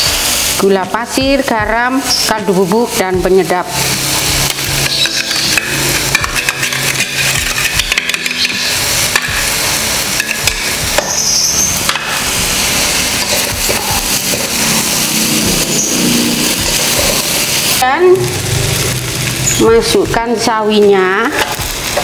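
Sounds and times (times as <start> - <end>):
noodles sizzling in wok: 0.0 - 22.0
metal spatula scraping wok: 3.6 - 19.7.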